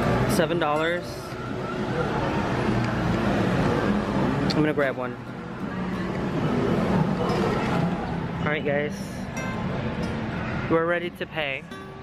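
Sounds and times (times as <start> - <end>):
supermarket background hum: 0.0 - 12.0.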